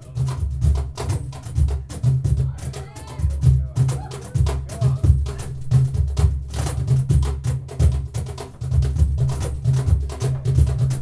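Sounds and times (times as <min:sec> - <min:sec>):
deep bass drum strokes: 0:00.0 - 0:11.0
hand percussion strikes: 0:00.0 - 0:11.0.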